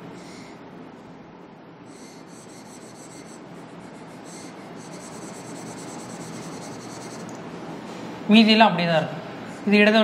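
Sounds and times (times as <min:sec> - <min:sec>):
marker scratching on whiteboard: 0:01.9 - 0:07.4.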